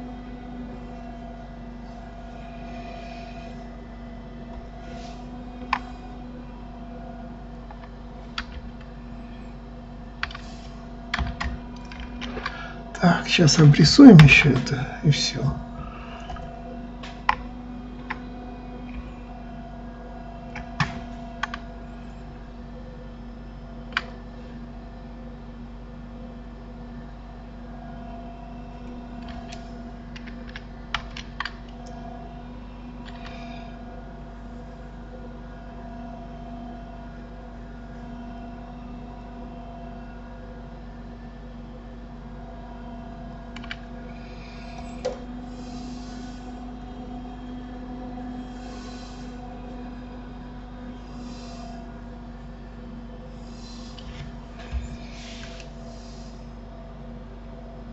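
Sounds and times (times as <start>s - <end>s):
steady low hum: 0.0s - 57.9s
computer keyboard and mouse clicks: 10.2s - 10.5s, 20.6s - 21.6s, 29.2s - 31.8s, 33.0s - 33.4s, 43.6s - 43.8s.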